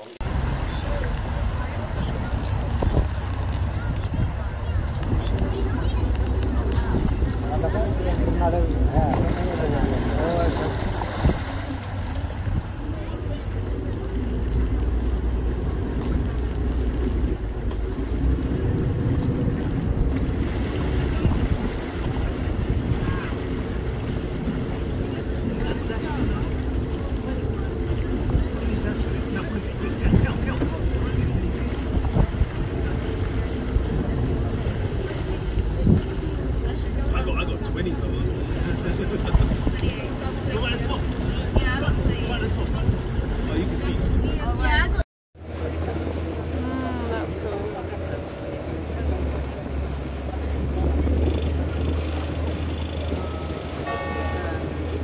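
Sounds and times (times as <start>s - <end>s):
boat engine drone: 0.0s - 55.0s
voices talking: 0.0s - 55.0s
water noise: 0.0s - 55.0s
wind buffeting microphone: 0.2s - 45.0s.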